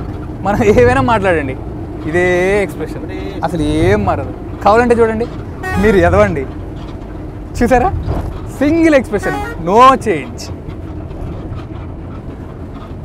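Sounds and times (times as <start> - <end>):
bus engine rumble: 0.0 - 13.0
people's voices: 2.1 - 4.1, 8.9 - 10.5.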